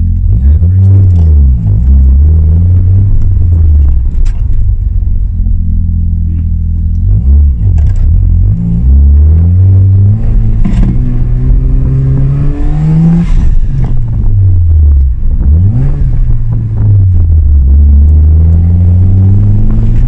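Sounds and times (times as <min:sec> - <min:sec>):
rotary car engine from inside cabin: 0:00.0 - 0:20.0.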